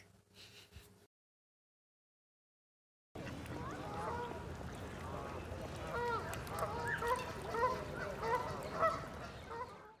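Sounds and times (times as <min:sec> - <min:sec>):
waterfowl calling: 0:05.9 - 0:10.0.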